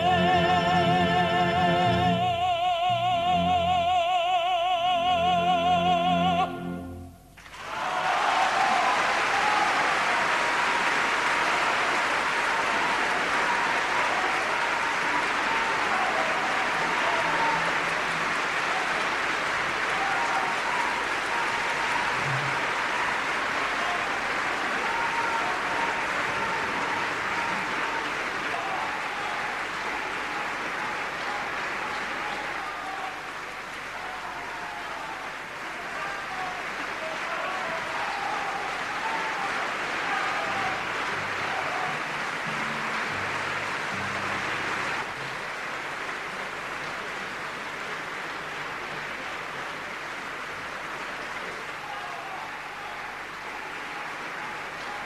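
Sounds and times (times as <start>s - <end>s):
large audience applauding: 0.0s - 2.1s, 7.4s - 55.0s.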